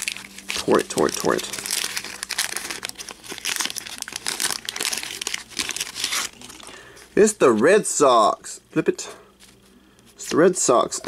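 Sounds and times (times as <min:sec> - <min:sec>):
paper wrapper crinkling and tearing: 0:00.0 - 0:07.0.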